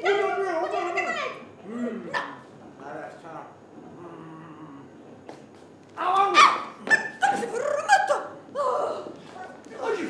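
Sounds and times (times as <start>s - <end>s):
high-pitched wordless vocal cries: 7.2s - 9.2s.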